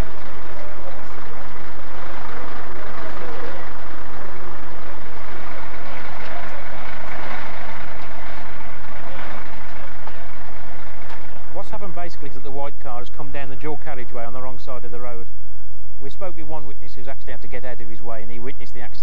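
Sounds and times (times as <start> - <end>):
vehicle engines running: 0.0 - 15.2
low electrical hum: 0.0 - 19.0.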